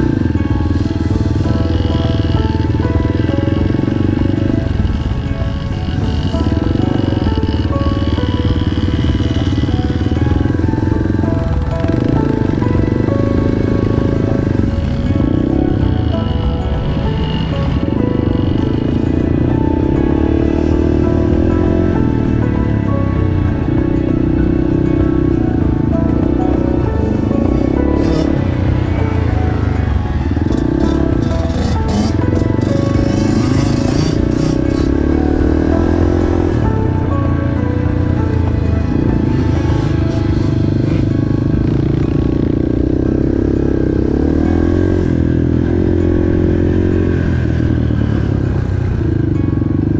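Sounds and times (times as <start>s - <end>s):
background music: 0.0s - 49.9s
dirt bike engine revving: 0.0s - 49.9s.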